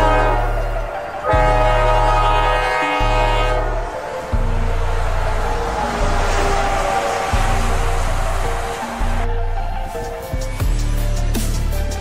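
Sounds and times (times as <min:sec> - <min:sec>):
locomotive air horn: 0:00.0 - 0:09.2
background music: 0:00.0 - 0:12.0.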